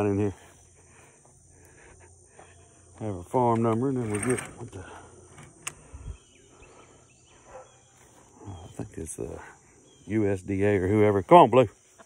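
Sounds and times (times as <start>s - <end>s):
faint bird chirps: 4.7s - 12.0s.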